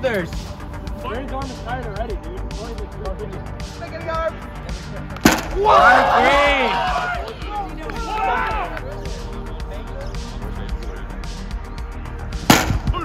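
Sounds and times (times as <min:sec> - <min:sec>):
background music: 0:00.0 - 0:13.0
sharp smack: 0:05.2 - 0:05.6, 0:12.5 - 0:12.9
voices whooping: 0:05.5 - 0:09.0.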